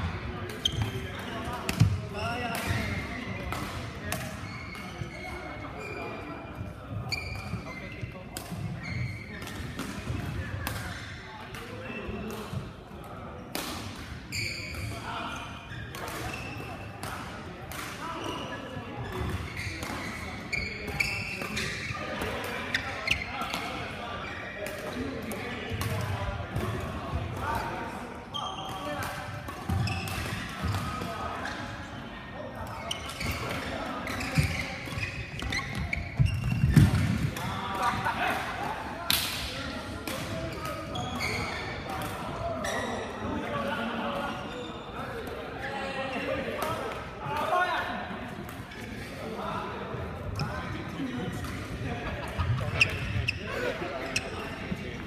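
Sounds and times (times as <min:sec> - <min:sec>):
voices in echoing hall: 0:00.0 - 0:55.0.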